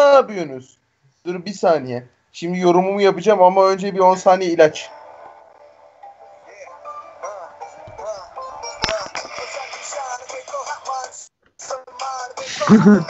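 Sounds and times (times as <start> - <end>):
music with singing voice: 4.9 - 13.0.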